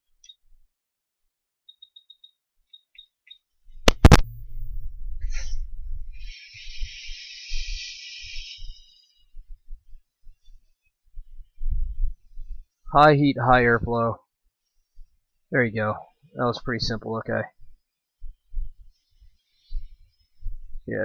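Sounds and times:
hot air hiss: 5.3 - 9.3.

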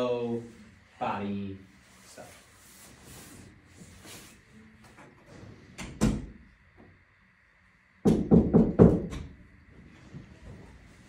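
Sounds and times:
knocking on wooden door: 8.0 - 9.3.

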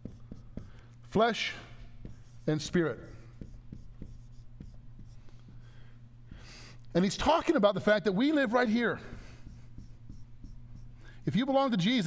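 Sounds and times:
marker writing on whiteboard: 0.0 - 6.7, 8.6 - 11.8.

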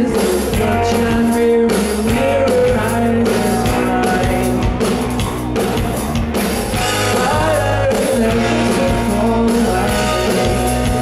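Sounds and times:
live rock band playing: 0.0 - 11.0
man singing long held notes: 7.0 - 11.0.

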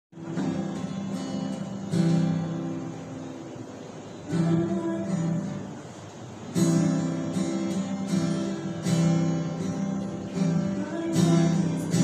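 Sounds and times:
acoustic guitar strumming: 0.1 - 12.0.

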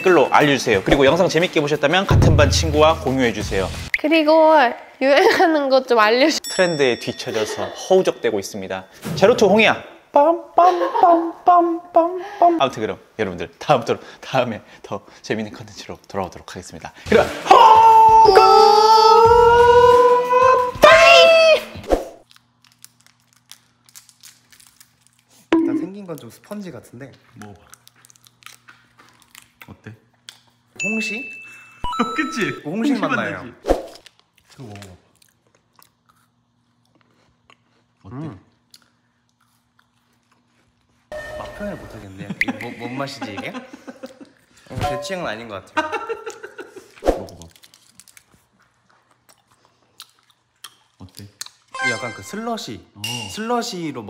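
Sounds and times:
plastic wrapper crinkling: 22.2 - 25.5, 47.3 - 48.6
person chewing soft candy: 27.2 - 30.7, 34.0 - 41.1, 47.3 - 51.7
mouth and teeth clicks: 47.3 - 51.7.

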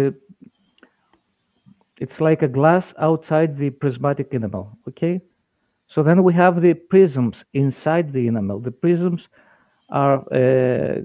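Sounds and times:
man saying uh: 10.0 - 11.0.

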